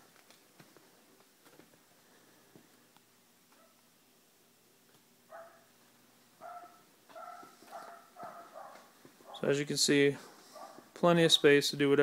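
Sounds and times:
muffled dog barking: 0:05.3 - 0:05.7, 0:06.4 - 0:09.5, 0:10.5 - 0:10.9.

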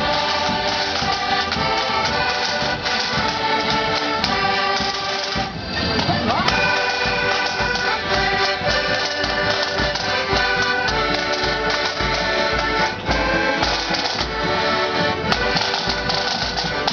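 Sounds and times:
accordions playing chords: 0:00.0 - 0:16.9
bass drum beat: 0:00.0 - 0:16.9.

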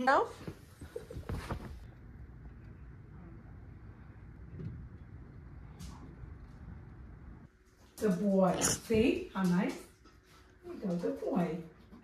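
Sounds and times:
low outdoor rumble: 0:00.6 - 0:07.5.

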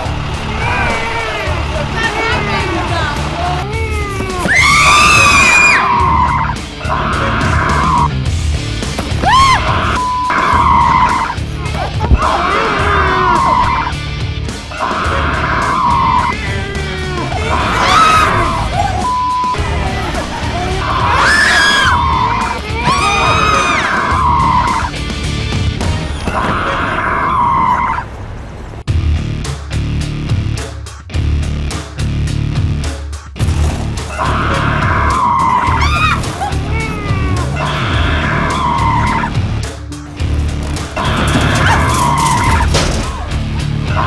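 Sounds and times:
loud scream: 0:00.0 - 0:02.5, 0:03.6 - 0:08.1, 0:09.2 - 0:11.4, 0:12.1 - 0:14.0, 0:14.7 - 0:25.0, 0:26.3 - 0:28.1, 0:34.1 - 0:39.4, 0:41.0 - 0:44.0
background music: 0:00.0 - 0:27.8, 0:28.9 - 0:44.0
gliding shrieks: 0:09.3 - 0:11.4.

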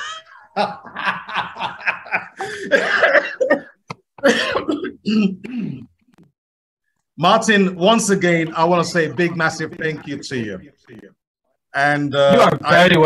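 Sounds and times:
man laughing hard: 0:00.2 - 0:04.5
man coughing: 0:02.4 - 0:05.9.

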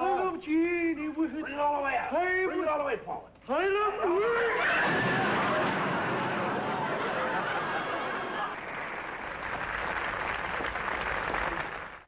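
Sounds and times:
audience applause: 0:05.1 - 0:12.0.

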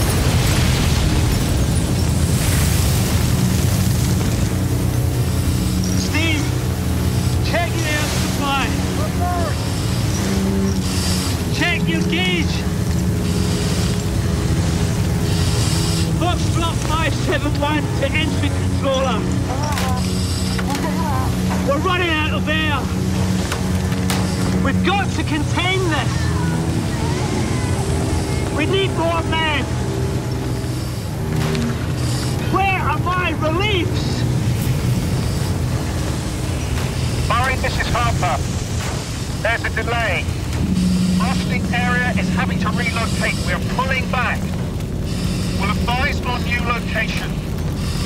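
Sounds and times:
loud low mechanical drone: 0:00.0 - 0:48.0
voices calling and talking: 0:05.8 - 0:13.4, 0:16.0 - 0:34.4, 0:35.9 - 0:47.9.

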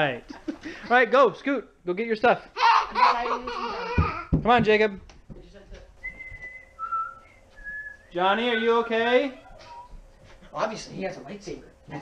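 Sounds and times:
person whistling: 0:06.0 - 0:08.1.

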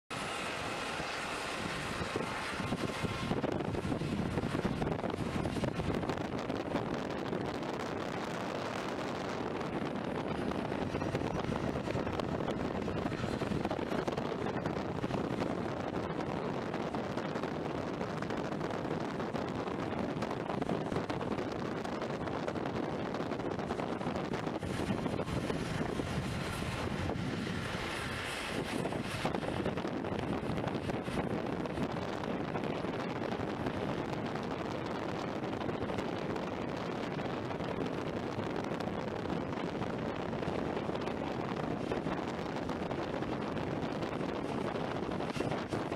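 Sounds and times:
distant jet airliner taxiing: 0:00.1 - 0:45.9
faint turbine whine: 0:00.1 - 0:45.9
wind buffeting microphone: 0:00.1 - 0:45.9.

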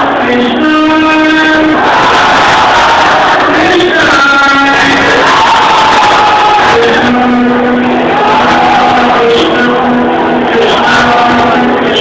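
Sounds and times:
crowd cheering: 0:00.0 - 0:12.0
live concert music: 0:00.0 - 0:12.0.

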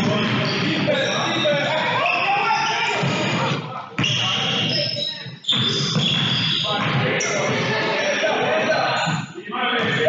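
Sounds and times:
sneakers squeaking: 0:00.0 - 0:10.0
voices echoing: 0:00.0 - 0:10.0.

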